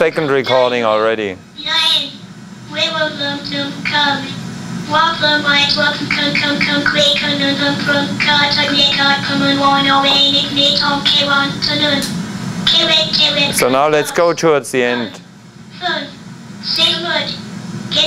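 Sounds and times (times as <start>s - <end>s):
synthesized machine voice: 1.6s - 12.1s, 12.7s - 15.1s.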